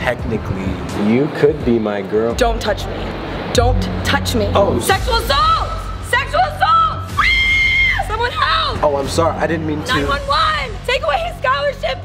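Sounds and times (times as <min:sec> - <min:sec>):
woman screaming: 0:05.2 - 0:08.8
shouted speech: 0:05.2 - 0:08.9.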